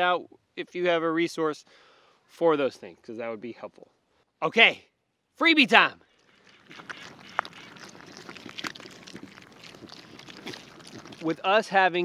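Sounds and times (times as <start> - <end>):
piglets rooting in dirt: 6.2 - 12.0.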